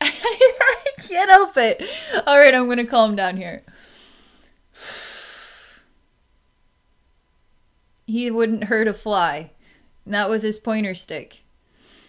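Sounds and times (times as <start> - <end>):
woman taking deep breath: 1.8 - 2.2, 3.7 - 5.9.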